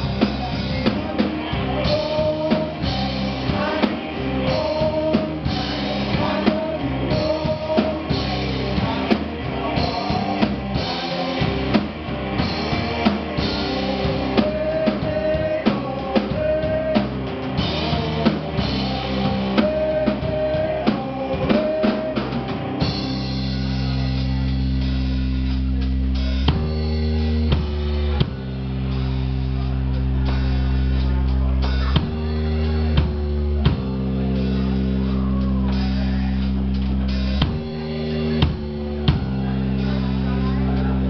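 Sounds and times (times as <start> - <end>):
rock band playing live: 0.0 - 41.0.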